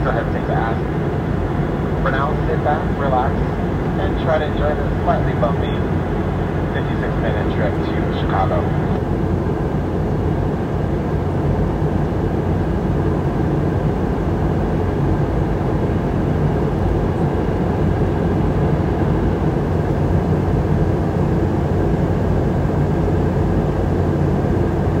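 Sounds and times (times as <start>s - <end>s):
jet engines droning: 0.0s - 25.0s.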